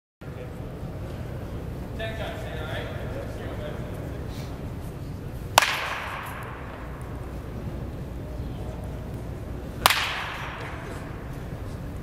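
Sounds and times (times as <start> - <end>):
baseball bat hitting ball: 5.5 - 7.5, 9.8 - 11.6.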